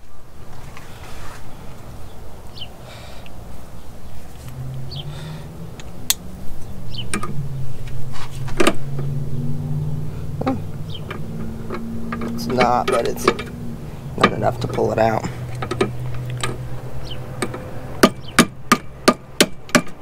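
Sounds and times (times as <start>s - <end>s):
low motor hum: 1.5s - 19.4s
hammer striking metal: 17.4s - 20.0s.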